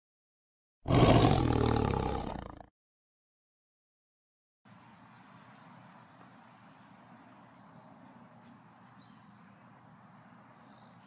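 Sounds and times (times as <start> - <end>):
tiger roar: 0.8 - 2.7.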